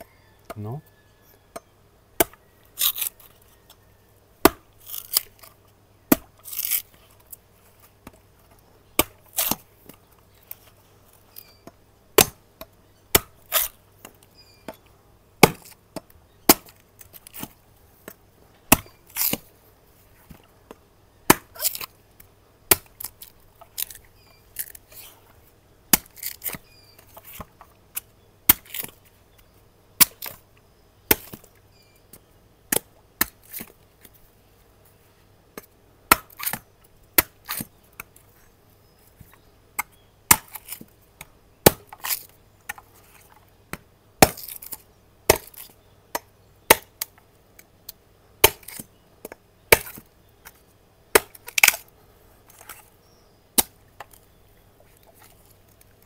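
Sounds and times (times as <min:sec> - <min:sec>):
knife chopping coconut husk: 0:15.4 - 0:17.5, 0:21.3 - 0:21.9, 0:41.6 - 0:42.3, 0:43.7 - 0:45.7, 0:48.4 - 0:50.0.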